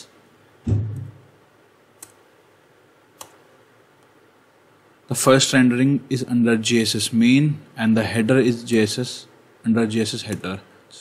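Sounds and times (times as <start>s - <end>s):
computer mouse click: 2.0s - 2.2s, 3.2s - 3.4s.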